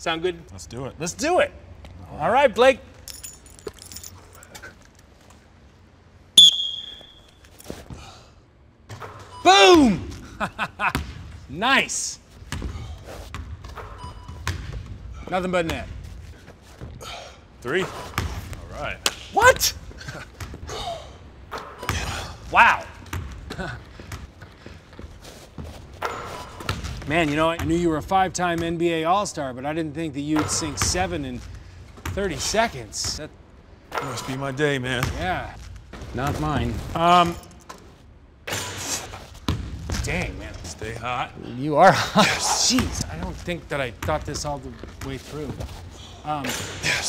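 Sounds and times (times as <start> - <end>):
basketballs thudding on wooden floor: 10.8 - 11.4, 12.5 - 16.0, 23.0 - 27.9, 39.4 - 40.2.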